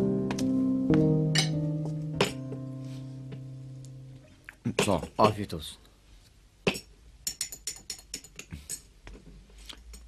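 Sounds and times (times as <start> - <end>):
glasses and dishes clinking: 1.4 - 1.6.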